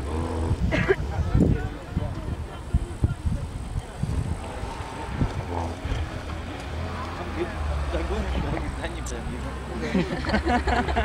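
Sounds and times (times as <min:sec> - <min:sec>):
faint spectator chatter: 0:00.0 - 0:11.0
off-road vehicle engine rumble: 0:00.0 - 0:11.0.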